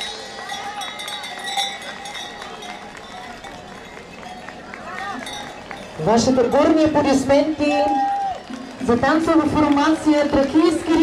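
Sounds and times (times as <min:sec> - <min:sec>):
costume bells clanking and jingling: 0:00.0 - 0:07.6
murmur of crowd voices: 0:00.0 - 0:11.0.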